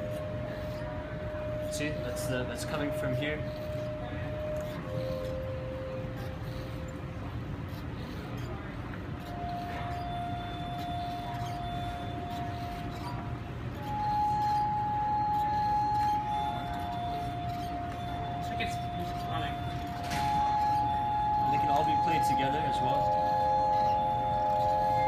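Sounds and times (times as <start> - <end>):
glass harp sustained notes: 0.0 - 25.0
steady low hum: 0.0 - 25.0.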